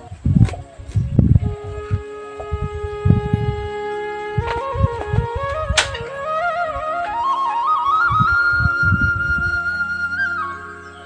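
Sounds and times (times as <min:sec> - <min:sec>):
low thuds: 0:00.0 - 0:09.6
flute-like long note: 0:00.9 - 0:11.0.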